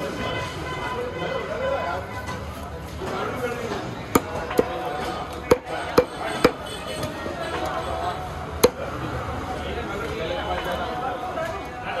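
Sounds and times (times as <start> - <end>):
knife chopping fish on wood: 4.1 - 4.8, 5.4 - 6.6, 8.6 - 8.9.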